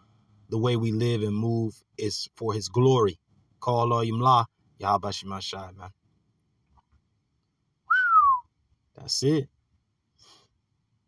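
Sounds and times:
man whistling downward: 7.9 - 8.5.

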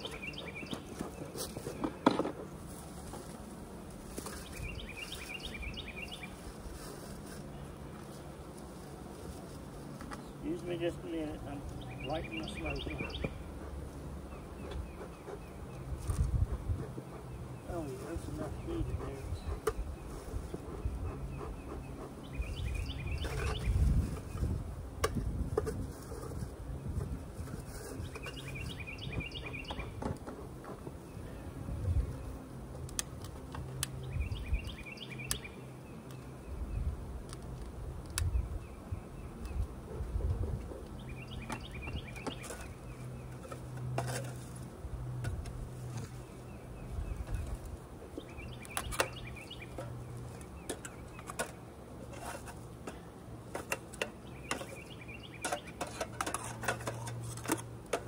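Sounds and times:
honeybees buzzing: 0.0 - 55.8.

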